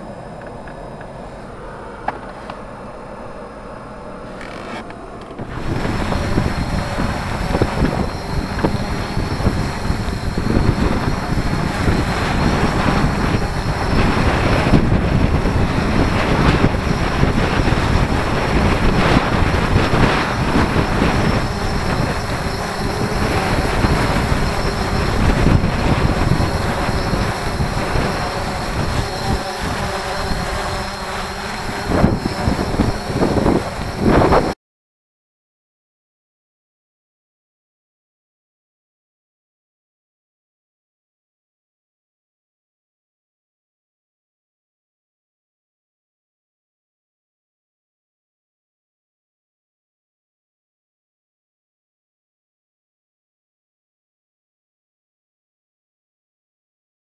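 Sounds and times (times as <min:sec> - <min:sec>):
steady noise inside truck cab: 0:00.0 - 0:08.3
drone rotors hovering: 0:00.0 - 0:34.6
strong wind buffeting microphone: 0:00.0 - 0:34.6.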